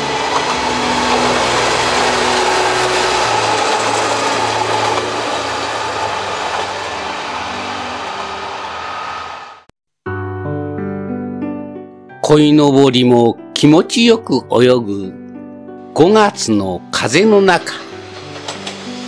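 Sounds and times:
diesel railcar passing: 0.0s - 9.7s, 16.7s - 19.0s.

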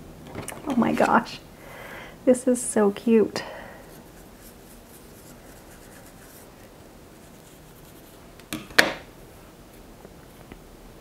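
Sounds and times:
comb rustling through wig: 3.8s - 8.2s.

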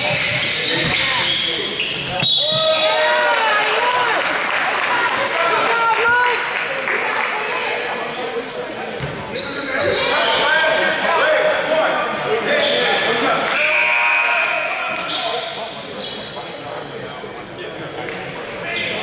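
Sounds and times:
sneaker squeaks on court floor: 0.0s - 2.8s, 8.0s - 10.5s, 12.4s - 13.1s, 14.9s - 16.5s, 18.7s - 19.0s
indistinct shouting and talk: 0.0s - 19.0s.

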